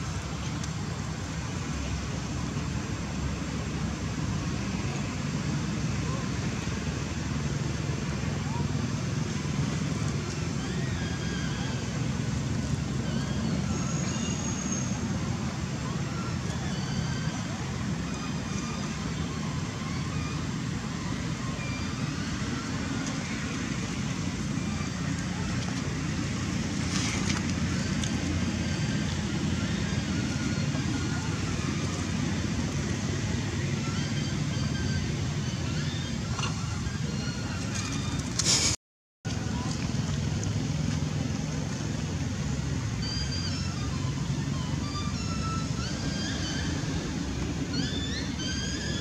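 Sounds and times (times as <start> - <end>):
low outdoor rumble: 0.0 - 49.0.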